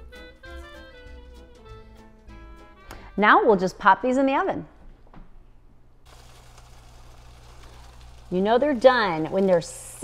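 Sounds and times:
oven hum: 6.0 - 10.0
food sizzling crackly hiss: 6.1 - 10.0.

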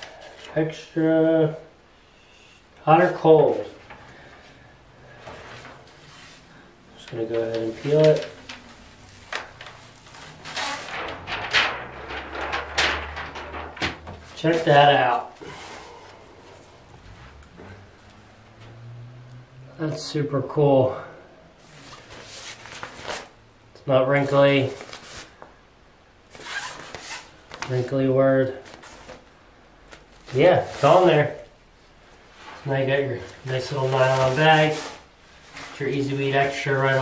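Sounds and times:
nylon bag rustling: 5.2 - 17.8, 21.6 - 23.4, 32.3 - 37.0
plastic sheet crinkling: 7.0 - 15.8, 21.7 - 23.4, 32.4 - 37.0.

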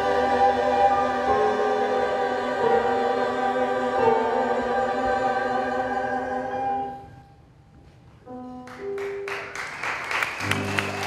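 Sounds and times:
mixed choir singing chord: 0.0 - 7.2.

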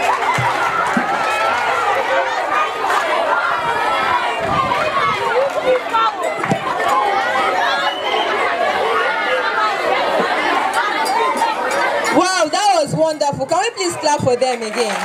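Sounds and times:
crowd of young voices chattering: 0.0 - 15.0.

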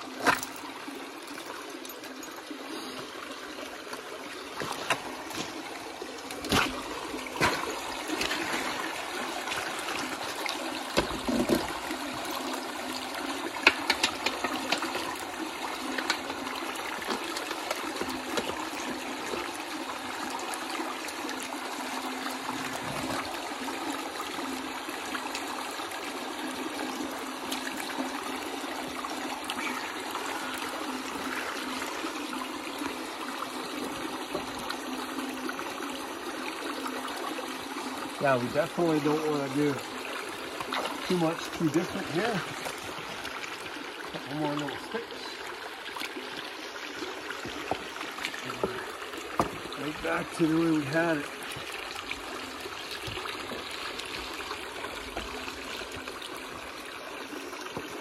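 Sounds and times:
water trickling: 0.0 - 58.0.

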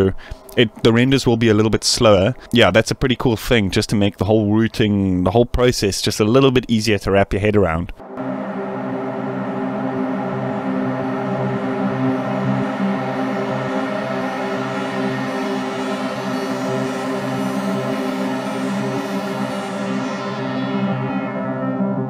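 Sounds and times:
synthesizer sequence: 8.0 - 22.0.

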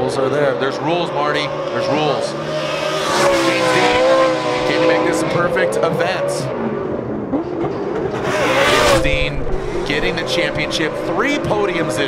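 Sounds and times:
car engine revving while drifting: 0.0 - 12.0
loud rushing noise: 8.5 - 11.8.

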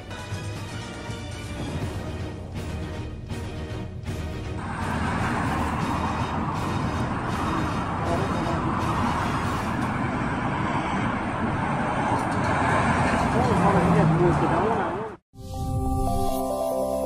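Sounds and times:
road traffic rushing: 0.0 - 15.2.

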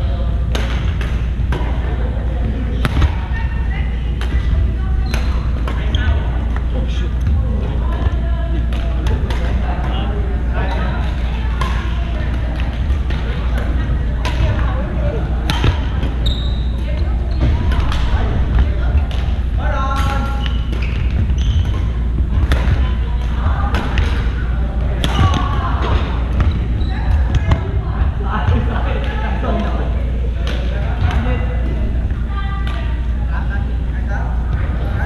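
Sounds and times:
steady low hum: 0.0 - 35.0
voices in a hall: 0.0 - 35.0
badminton rackets hitting shuttlecock: 0.5 - 1.7, 8.7 - 9.9, 15.4 - 16.2, 20.0 - 24.4
shoes squeaking on hardwood floor: 15.6 - 17.6, 20.1 - 21.9.

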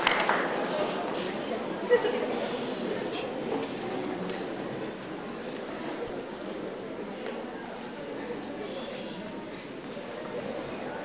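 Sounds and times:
audience murmuring: 0.0 - 11.0.

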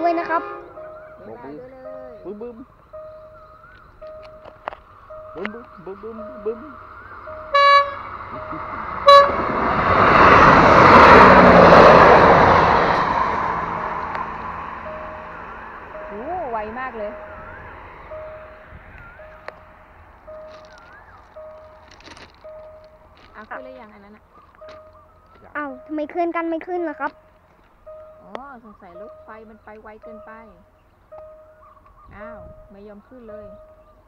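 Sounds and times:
train horn blasts: 0.0 - 1.3, 7.3 - 10.1
train rushing past: 0.0 - 3.4, 5.1 - 24.2
level crossing warning beeps: 0.0 - 9.4, 14.8 - 34.0.

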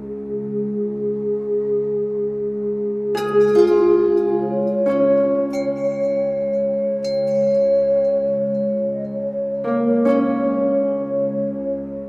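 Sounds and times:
calm ambient music: 0.0 - 12.0
ringing notes: 3.1 - 12.0.

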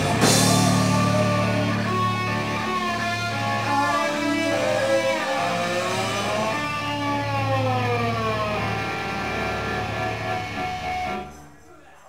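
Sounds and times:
low bass note: 0.0 - 10.8
electric guitar notes bending down: 0.0 - 11.4.

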